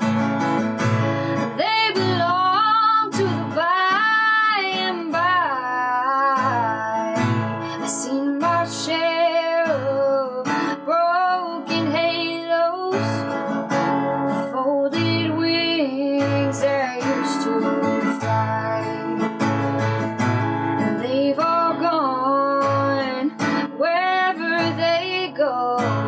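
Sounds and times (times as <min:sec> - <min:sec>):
acoustic guitar strumming: 0:00.0 - 0:26.0
woman singing country ballad: 0:00.8 - 0:26.0.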